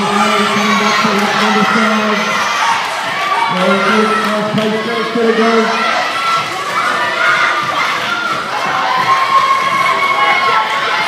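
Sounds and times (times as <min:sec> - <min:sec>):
children cheering and shouting: 0:00.0 - 0:11.0.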